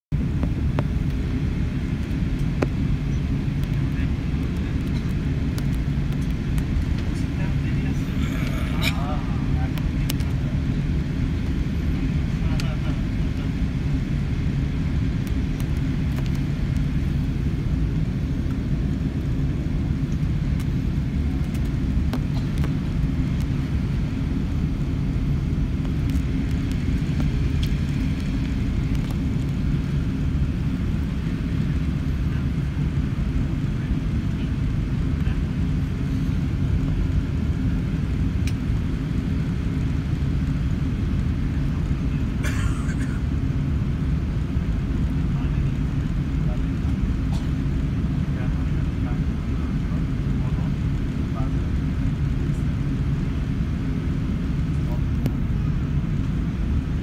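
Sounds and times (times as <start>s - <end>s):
airplane cabin low rumble: 0.1s - 57.0s
faint voice: 7.5s - 9.8s.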